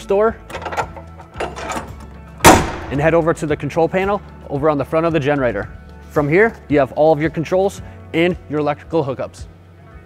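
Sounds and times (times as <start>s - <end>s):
metal door slamming shut: 0.5s - 3.1s.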